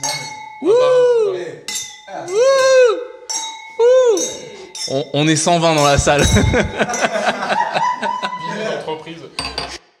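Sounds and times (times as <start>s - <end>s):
tableware clinking: 0.0s - 0.7s, 1.6s - 7.9s, 9.4s - 9.8s
voices in the room: 0.0s - 9.8s.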